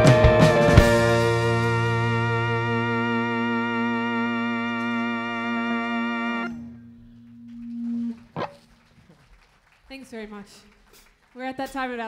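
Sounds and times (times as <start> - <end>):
electric guitar chord ringing: 0.0 - 9.2.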